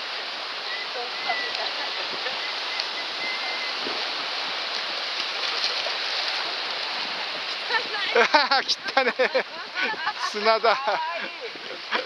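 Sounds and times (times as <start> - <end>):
surf waves washing on sand: 0.0 - 12.0.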